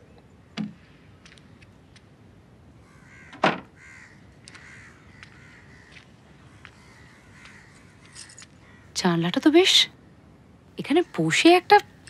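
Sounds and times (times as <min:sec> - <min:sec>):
crow caw: 0:02.8 - 0:08.9.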